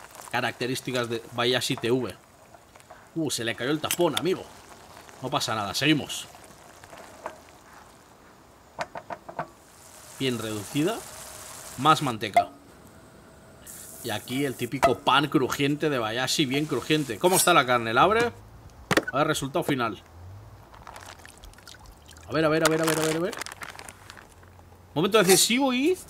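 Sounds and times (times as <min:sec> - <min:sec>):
sauce bubbling in a pan: 0:00.0 - 0:12.3, 0:20.6 - 0:22.8
water trickling and dripping: 0:20.9 - 0:22.4.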